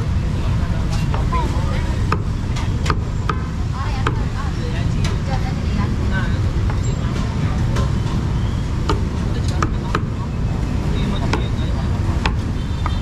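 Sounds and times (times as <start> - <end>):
low rumble of road traffic: 0.0 - 13.0
voices: 0.0 - 13.0.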